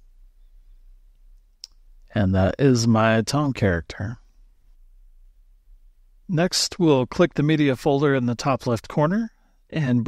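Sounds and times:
faint low room hum: 0:00.0 - 0:10.0.

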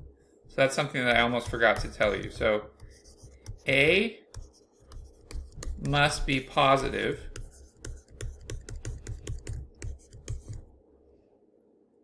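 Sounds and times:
stylus tapping on tablet screen: 0:01.1 - 0:10.7.

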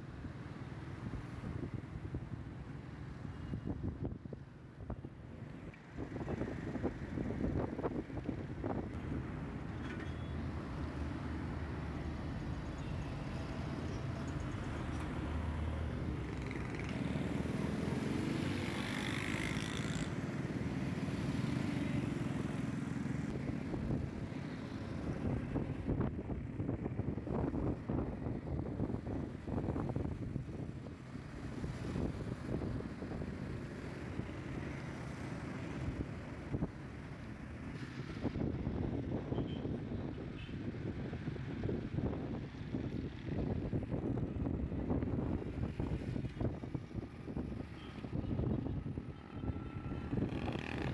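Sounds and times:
vehicle engine and road rumble: 0:00.0 - 0:50.9.

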